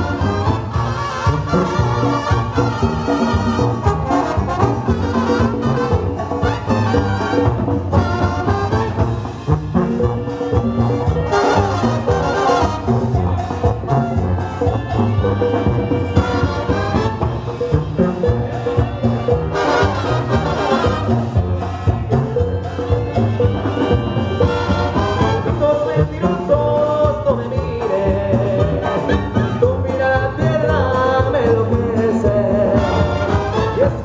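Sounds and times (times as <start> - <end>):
trumpets and trombones playing chords: 0.0 - 26.3, 28.6 - 30.0, 32.5 - 34.0
sousaphone bass line: 0.0 - 34.0.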